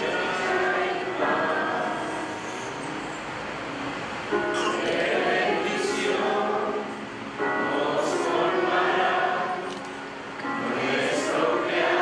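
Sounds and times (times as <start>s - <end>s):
group singing a hymn: 0.0s - 2.8s, 4.5s - 12.0s.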